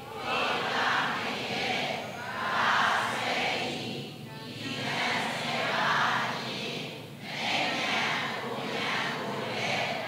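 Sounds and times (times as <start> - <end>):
voices reciting in unison: 0.0 - 10.0.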